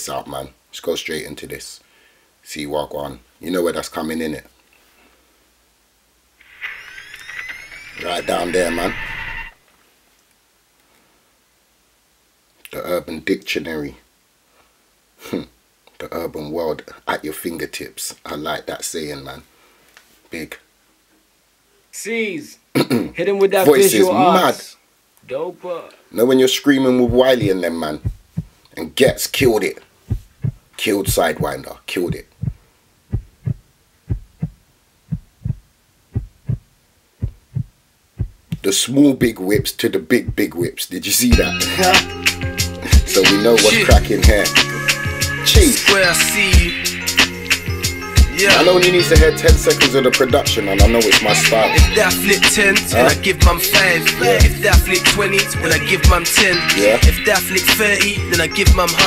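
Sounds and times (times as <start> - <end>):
heartbeat thumps: 27.0 - 38.6.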